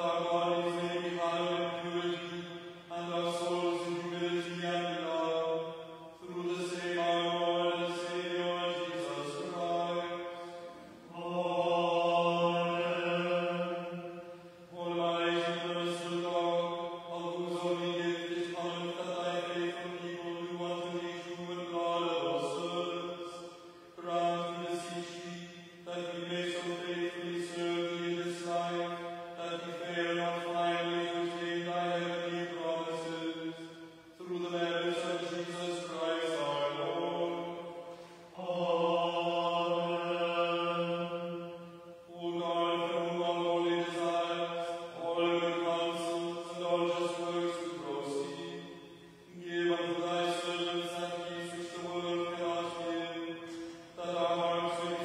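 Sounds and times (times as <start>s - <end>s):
voice chanting: 0.0s - 55.0s.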